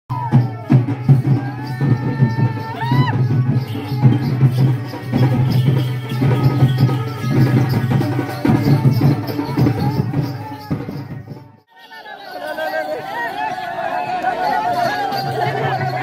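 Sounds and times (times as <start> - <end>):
folk drumming and rattling percussion: 0.1 - 16.0.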